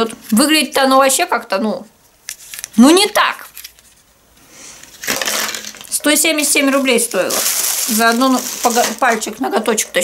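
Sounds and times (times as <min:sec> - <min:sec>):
plastic packaging rustling: 0:04.8 - 0:10.0.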